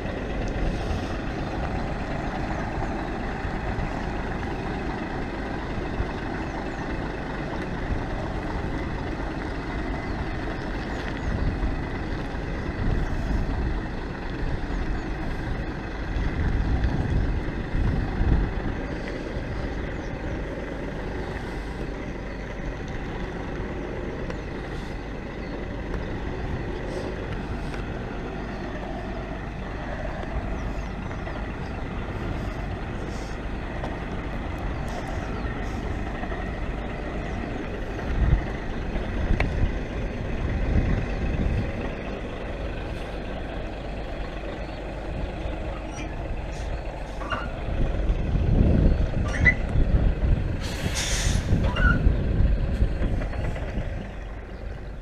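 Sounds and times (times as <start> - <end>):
lorry diesel engine running: 0.0 - 55.0
low engine rumbles: 0.0 - 55.0
short air hiss: 50.6 - 51.5.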